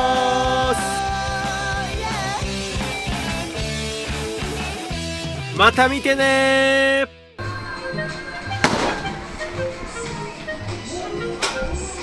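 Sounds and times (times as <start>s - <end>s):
quiet background music: 7.4s - 12.0s
baseball bat hitting ball: 8.6s - 9.4s.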